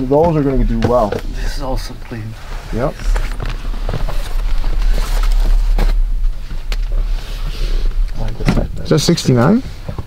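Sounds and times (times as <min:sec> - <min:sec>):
caps rustling: 0:00.0 - 0:10.0
steady low rumble: 0:00.0 - 0:10.0.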